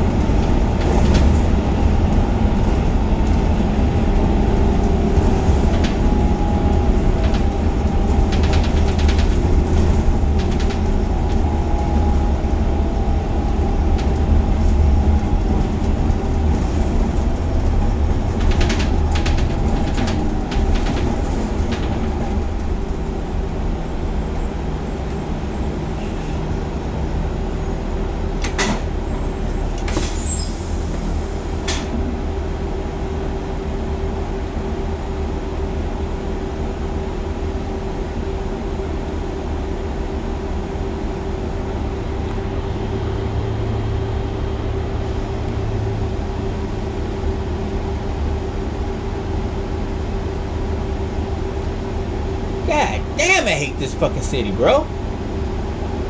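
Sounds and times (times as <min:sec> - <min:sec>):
bus engine and road noise: 0:00.0 - 0:56.0.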